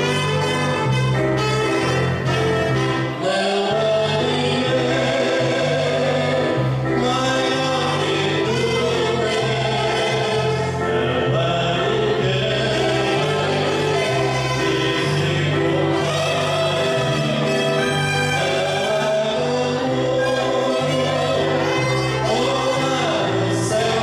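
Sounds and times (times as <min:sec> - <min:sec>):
bass line: 0:00.0 - 0:24.0
gospel singing: 0:00.0 - 0:24.0
keyboard accompaniment: 0:00.0 - 0:24.0.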